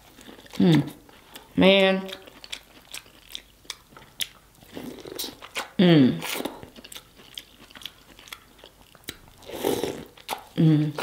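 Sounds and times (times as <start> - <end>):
wet chewing mouth smacks: 2.1 - 9.3, 10.2 - 10.5
person humming: 5.8 - 6.2, 10.6 - 11.0.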